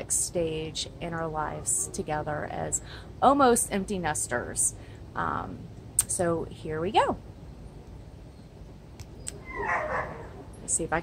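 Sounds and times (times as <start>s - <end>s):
woman speaking: 0.0s - 7.2s, 10.6s - 11.0s
faint outdoor background noise: 0.0s - 11.0s.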